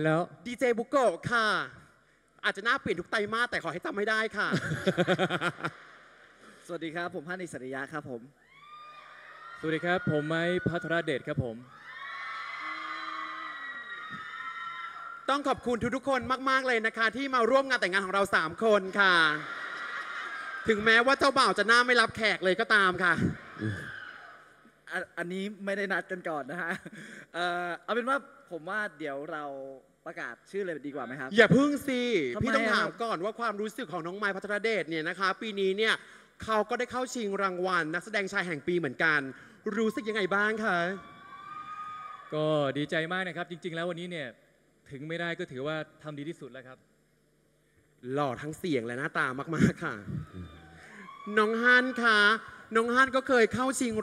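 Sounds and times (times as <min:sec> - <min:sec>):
man speaking into a microphone: 0:00.0 - 0:05.3, 0:06.6 - 0:08.3, 0:09.6 - 0:11.7, 0:15.3 - 0:19.5, 0:20.6 - 0:23.9, 0:24.9 - 0:41.0, 0:48.0 - 0:50.5, 0:51.3 - 0:54.0
audience screaming and cheering: 0:08.5 - 0:15.5, 0:18.9 - 0:21.7, 0:23.0 - 0:24.6, 0:39.8 - 0:42.5, 0:50.1 - 0:52.7.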